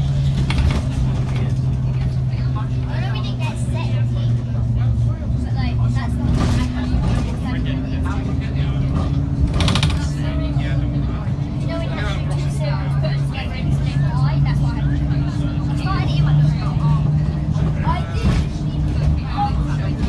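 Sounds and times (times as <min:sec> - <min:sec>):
bus engine running: 0:00.0 - 0:20.0
chatter of passengers' voices: 0:00.0 - 0:20.0.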